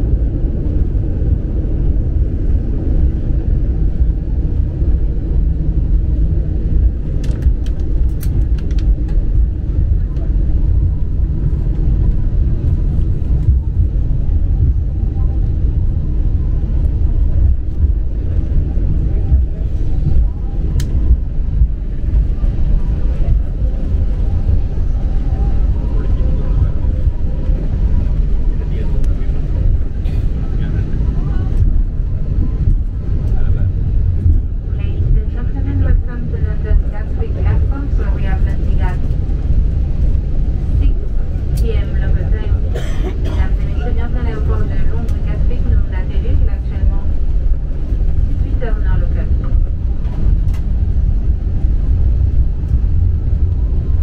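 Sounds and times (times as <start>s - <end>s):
airliner cabin low rumble: 0.0s - 54.0s.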